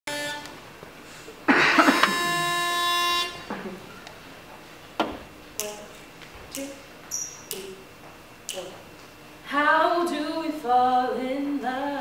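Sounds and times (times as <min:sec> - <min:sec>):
pitch pipe note: 0:00.1 - 0:00.6, 0:01.7 - 0:03.5.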